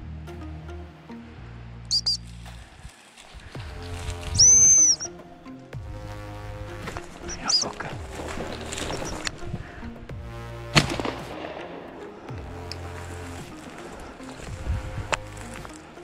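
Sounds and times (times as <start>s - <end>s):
background music: 0.0s - 16.0s
high-pitched dog whistle: 1.9s - 2.2s, 4.4s - 5.1s.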